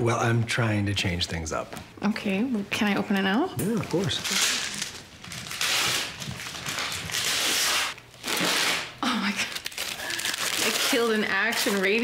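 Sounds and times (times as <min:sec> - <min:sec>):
wrapping paper tearing and rustling: 0:03.6 - 0:12.0.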